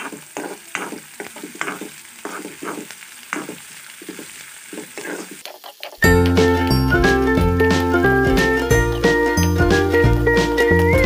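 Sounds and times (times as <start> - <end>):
metal spoon scraping pan: 0.0 - 6.0
onions sizzling in oil: 0.0 - 11.0.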